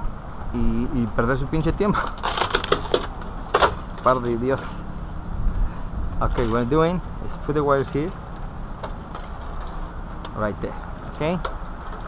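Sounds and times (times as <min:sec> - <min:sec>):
broken glass crunching: 0:02.2 - 0:04.2.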